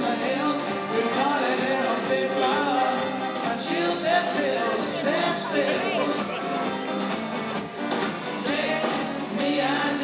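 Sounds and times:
man singing: 0.0 - 6.7, 8.3 - 10.0
acoustic guitars: 0.0 - 10.0.

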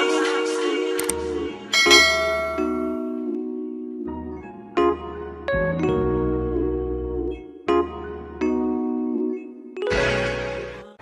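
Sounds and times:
bright bell-like chime: 1.8 - 3.3.

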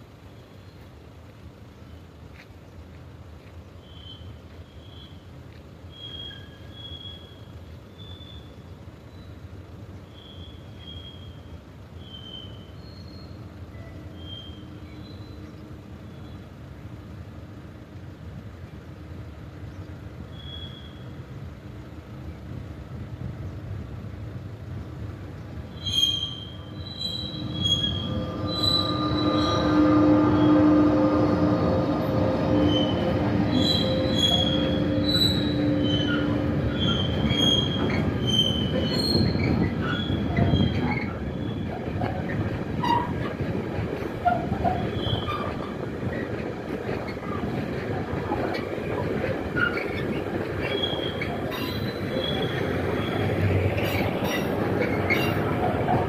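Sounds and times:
locomotive hum: 0.0 - 56.0
train wagons rumbling: 0.0 - 56.0
high-pitched wheel squeal: 5.9 - 9.3, 12.0 - 15.4, 20.3 - 21.2, 25.7 - 43.5, 44.2 - 46.4, 49.2 - 56.0.

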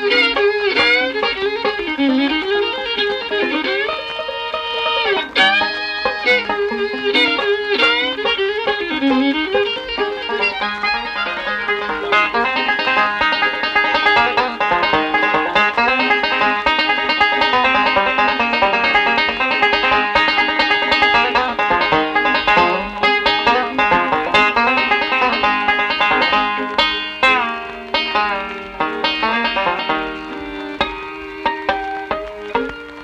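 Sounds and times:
banjo notes sliding down in pitch: 0.0 - 33.0
banjo picking: 0.0 - 33.0
fiddle playing: 0.0 - 33.0.

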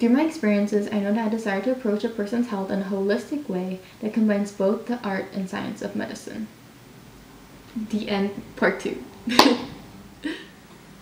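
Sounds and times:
woman laughing: 9.3 - 10.6.

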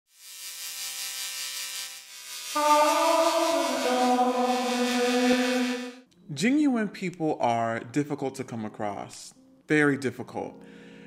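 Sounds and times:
glitch static hiss and buzz: 0.1 - 6.0.

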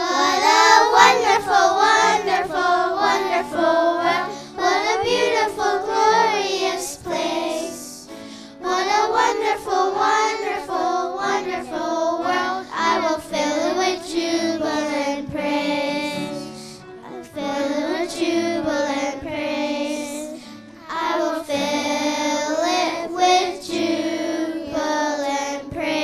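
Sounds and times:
girls choir singing: 0.0 - 26.0.

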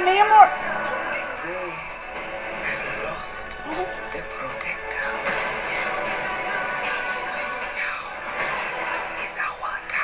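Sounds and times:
voice speaking over music: 2.6 - 5.1.

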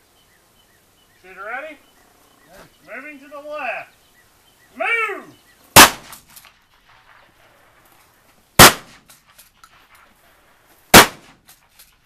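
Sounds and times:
shotgun shots: 5.7 - 7.4, 8.6 - 9.9, 10.9 - 11.5.

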